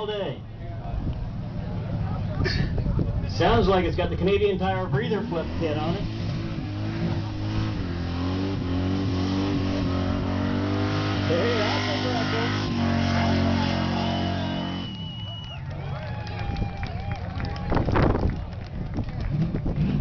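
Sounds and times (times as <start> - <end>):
pickup engine revving high: 1.3 - 15.3
announcer speaking: 11.3 - 14.6.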